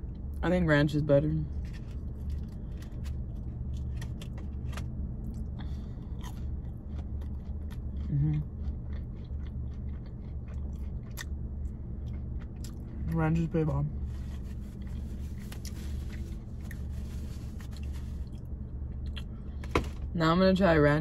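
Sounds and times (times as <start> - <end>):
steady low hum: 0.0 - 21.0
close-up chewing: 1.6 - 13.2, 14.1 - 19.6.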